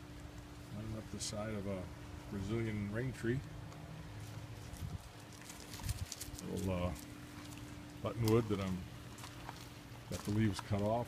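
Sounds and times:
faint steady hum: 0:00.0 - 0:11.0
footsteps on gravel: 0:04.1 - 0:11.0.

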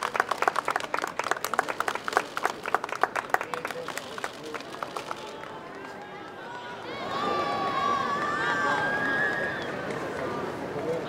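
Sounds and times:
crowd shouting and cheering: 0:05.2 - 0:11.0.

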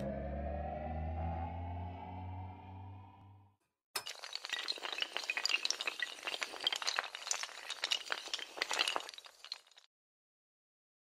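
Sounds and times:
dominoes toppling clatter: 0:04.0 - 0:09.9.

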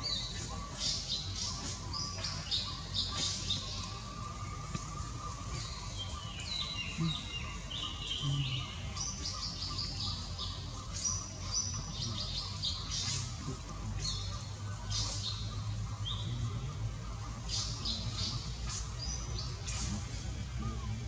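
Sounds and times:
birds chirping: 0:00.0 - 0:21.0
steady low rumble: 0:00.0 - 0:21.0.

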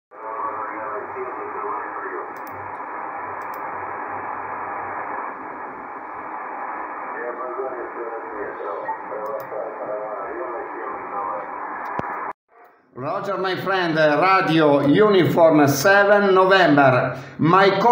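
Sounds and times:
muffled radio voice talking: 0:00.2 - 0:02.4, 0:07.1 - 0:11.6
radio band hiss: 0:00.2 - 0:12.3.

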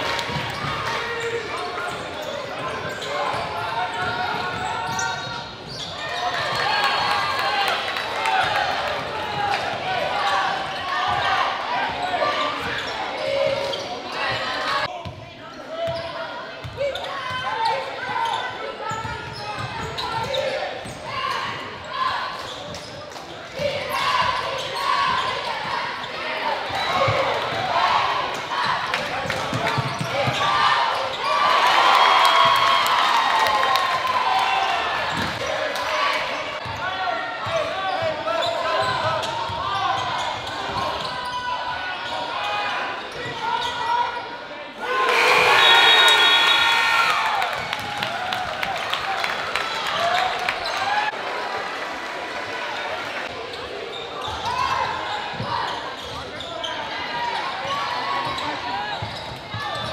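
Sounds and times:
voices echoing in hall: 0:00.0 - 0:59.9.

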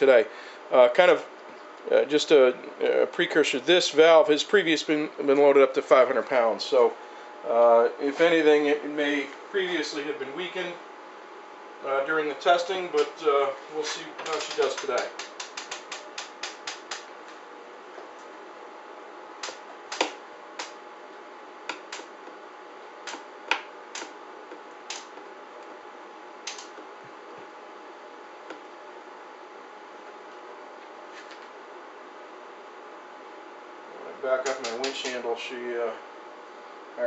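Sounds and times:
faint steady hum: 0:00.0 - 0:37.0.

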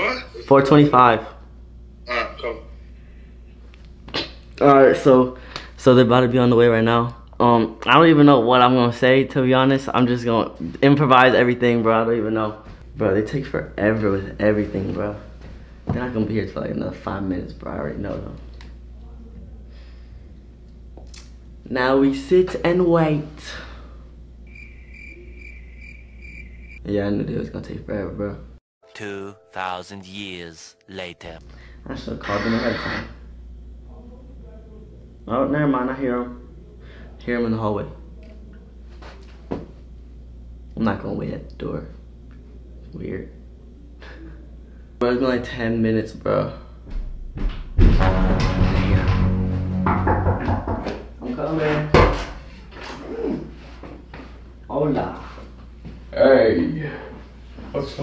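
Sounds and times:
crickets chirping: 0:24.4 - 0:26.8
door banging shut: 0:47.5 - 0:50.9.

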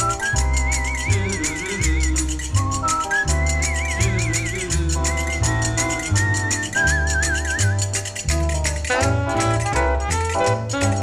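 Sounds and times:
clicking percussion beat: 0:00.0 - 0:11.0
small band playing: 0:00.0 - 0:11.0
whistled melody with vibrato: 0:00.0 - 0:11.0.

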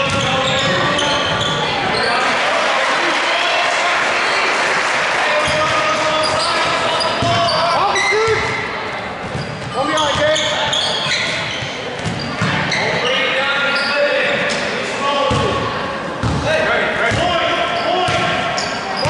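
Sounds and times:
echoing voices: 0:00.0 - 0:19.0.

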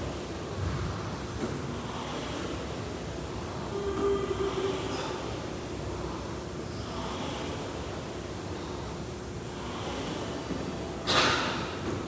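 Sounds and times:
man breathing heavily: 0:01.7 - 0:11.0.

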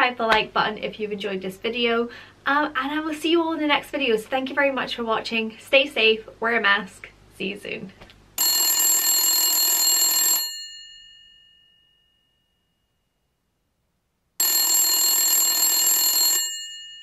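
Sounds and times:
electric bell ringing: 0:08.4 - 0:12.5, 0:14.4 - 0:17.0.

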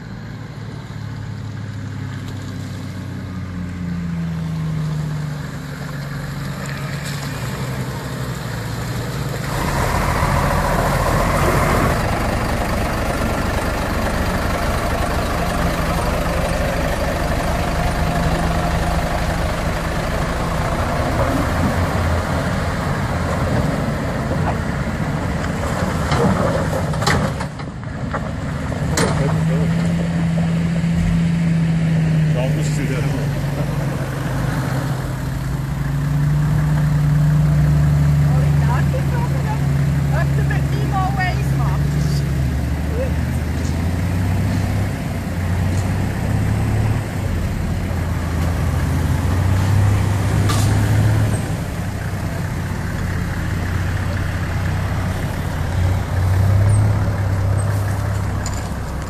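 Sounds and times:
off-road vehicle engines droning: 0:00.0 - 0:59.0.

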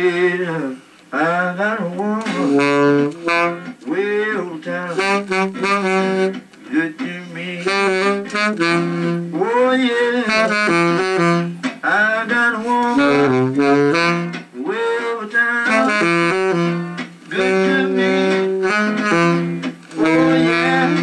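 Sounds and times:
tenor saxophone melody: 0:02.2 - 0:04.0, 0:04.8 - 0:06.7, 0:07.4 - 0:11.8, 0:12.5 - 0:21.0.

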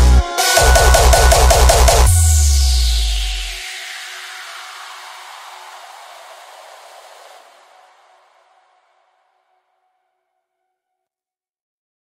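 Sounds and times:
synthesized white-noise wash: 0:00.6 - 0:09.1.

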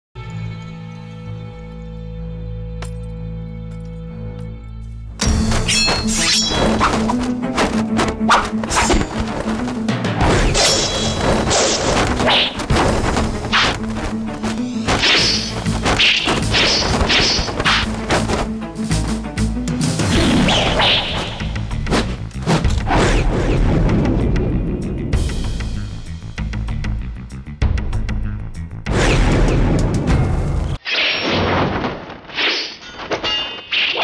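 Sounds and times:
dramatic background music: 0:01.6 - 0:30.8
fight hits and crashes: 0:05.2 - 0:19.2, 0:31.1 - 0:34.0
short swishes: 0:05.5 - 0:18.5.

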